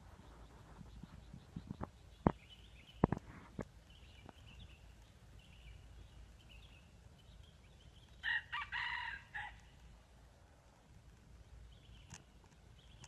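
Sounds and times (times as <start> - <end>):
rooster crowing: 8.2 - 9.6.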